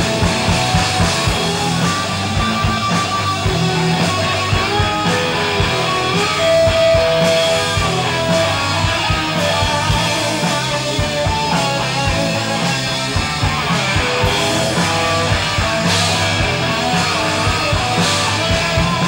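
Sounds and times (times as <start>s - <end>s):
bass guitar: 0.0s - 19.0s
drums: 0.0s - 19.0s
electric guitar lead lines: 0.0s - 19.0s.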